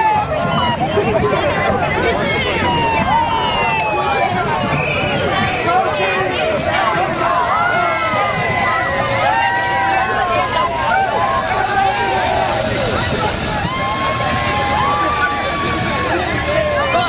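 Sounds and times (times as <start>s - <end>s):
crowd talking and calling out: 0.0s - 17.0s
vehicle engine hum: 0.7s - 17.0s.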